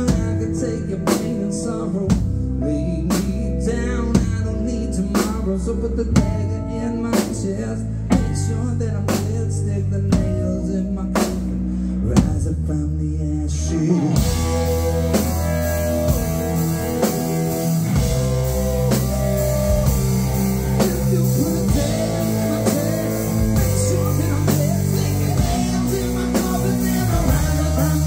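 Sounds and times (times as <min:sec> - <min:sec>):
electric bass: 0:00.0 - 0:28.0
drum kit with cymbals: 0:07.1 - 0:12.6, 0:13.9 - 0:28.0
overdriven electric guitar: 0:13.5 - 0:28.0.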